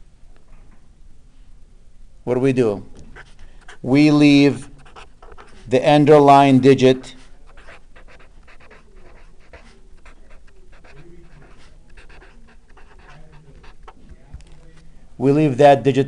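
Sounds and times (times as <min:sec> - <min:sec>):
marker scratching on paper: 0:03.1 - 0:03.9, 0:04.6 - 0:05.8, 0:07.1 - 0:14.2.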